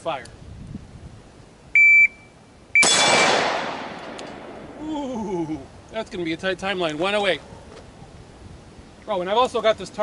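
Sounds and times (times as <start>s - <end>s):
shot timer beep: 1.8s - 3.3s
rifle shot: 2.8s - 4.6s.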